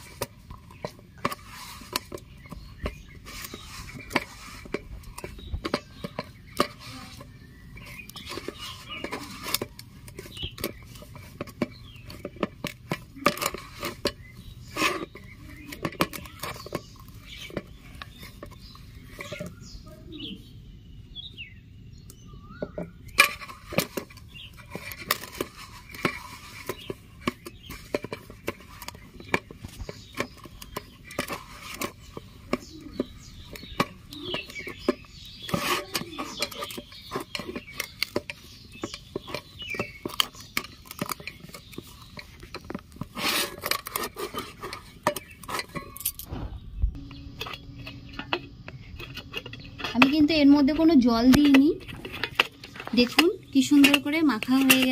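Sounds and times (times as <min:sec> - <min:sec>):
dough squishing: 0:00.0 - 0:20.5, 0:22.1 - 0:54.9.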